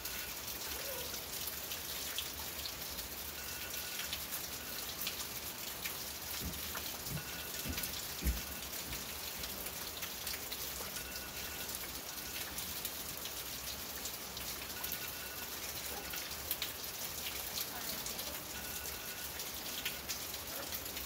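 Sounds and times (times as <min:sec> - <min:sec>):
rain on a roof: 0:00.0 - 0:21.0.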